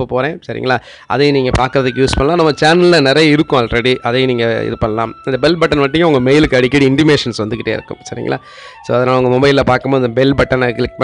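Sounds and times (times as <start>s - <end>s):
man talking: 0.0s - 11.0s
man breathing: 0.8s - 1.1s, 8.4s - 8.9s.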